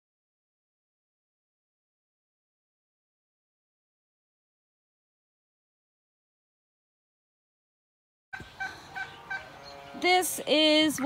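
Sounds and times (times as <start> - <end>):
fowl calls: 8.4 - 10.4
quiet outdoor ambience: 8.4 - 11.0.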